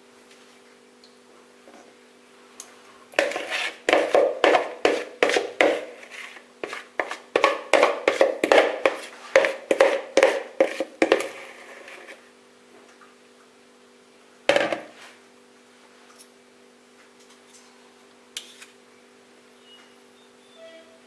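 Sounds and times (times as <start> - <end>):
metal spoon scraping plastic bowl: 3.2 - 12.2.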